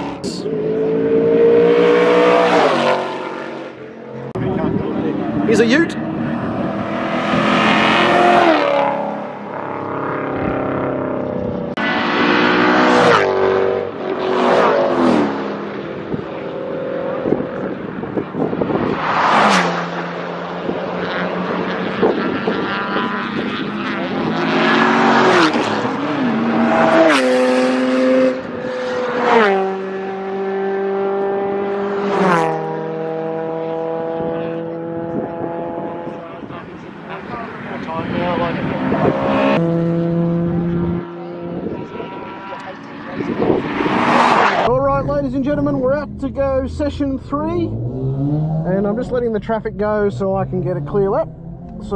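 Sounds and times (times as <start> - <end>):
race cars passing at speed: 0.0 - 51.9.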